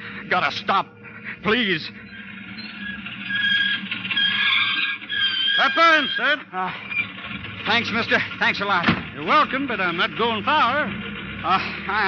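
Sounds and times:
car brakes squealing: 0.0 - 12.0.

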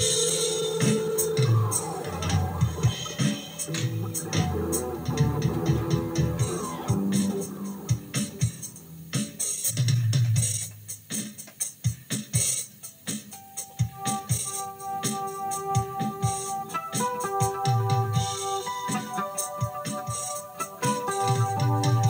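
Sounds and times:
electric guitar: 0.0 - 9.6, 13.9 - 22.0
backing track drums and keyboards: 0.0 - 22.0.

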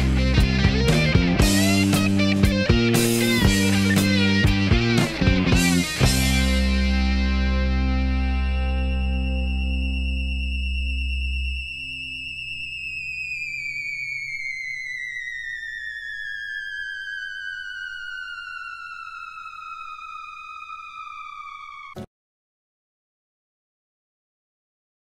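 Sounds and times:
high synthesizer tone sliding down: 0.0 - 22.0.

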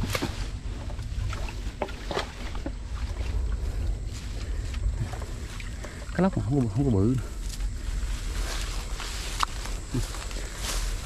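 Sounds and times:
rustling dry grass and leaves: 0.0 - 11.0
wind rumble on microphone: 0.0 - 11.0.

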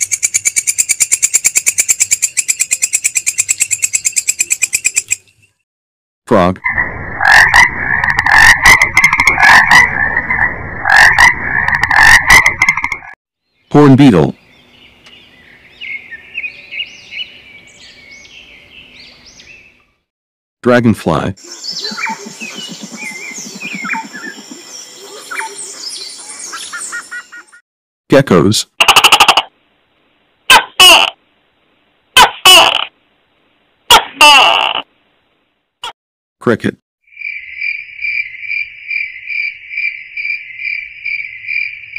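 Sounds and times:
frogs croaking: 6.6 - 13.2, 37.1 - 41.9
birds chirping and whistling: 14.4 - 19.9, 21.4 - 27.6.

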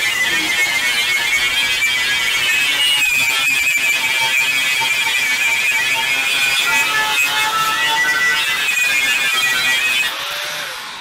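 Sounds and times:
angle grinder whining: 0.0 - 11.0.

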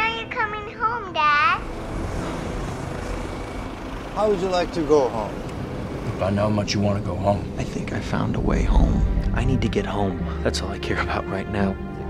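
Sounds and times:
aircraft engine rumble: 1.6 - 10.8.

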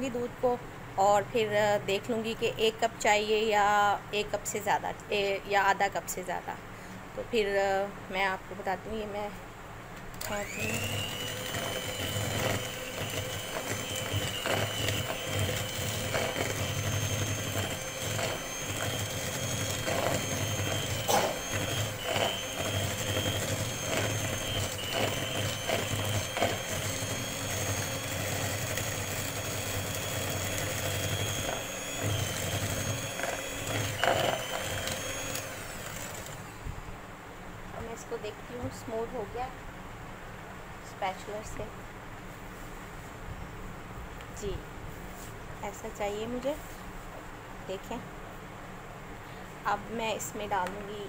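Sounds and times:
electric hand mixer whining: 10.2 - 36.6.

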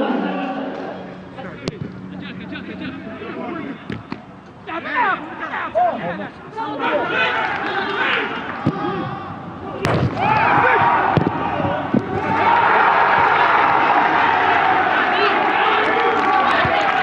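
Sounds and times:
men shouting and cheering: 4.6 - 17.0
football being kicked: 9.8 - 10.3.

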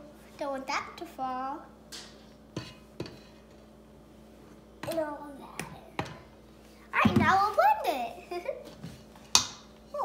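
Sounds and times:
child speaking: 0.4 - 1.7, 4.8 - 6.0, 6.9 - 8.7.

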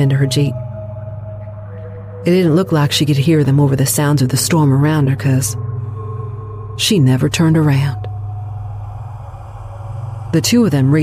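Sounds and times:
low rumbling drone: 0.0 - 11.0.

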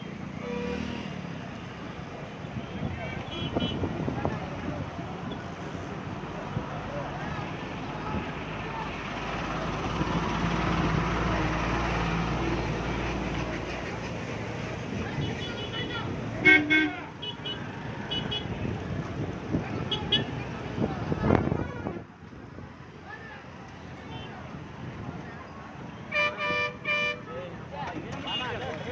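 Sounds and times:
vehicle horns tooting: 3.1 - 4.0, 15.2 - 18.6, 26.1 - 27.3
passing vehicle rumble: 3.8 - 28.9.

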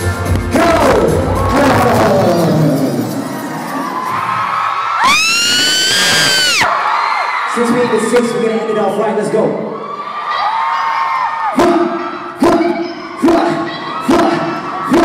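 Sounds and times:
live concert music with heavy bass: 0.0 - 6.7, 11.5 - 15.0
crowd noise: 0.0 - 15.0
crowd cheering and whooping: 1.0 - 15.0.

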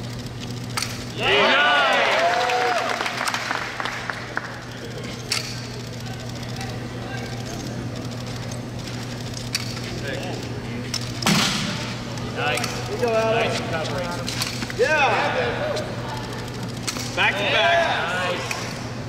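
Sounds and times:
low hall hum: 0.0 - 19.0
spectators cheering: 1.2 - 4.7.

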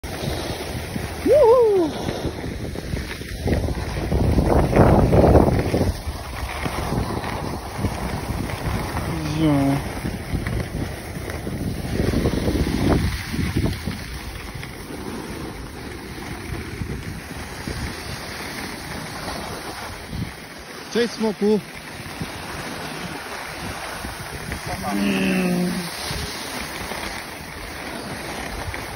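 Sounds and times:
skis running over packed snow: 0.0 - 28.9
wind buffeting microphone: 0.0 - 28.9
person calling out: 24.7 - 26.0.

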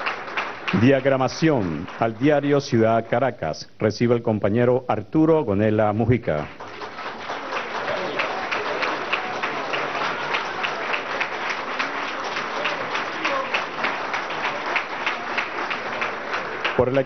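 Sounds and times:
audience applauding: 0.0 - 3.2, 6.3 - 17.0.

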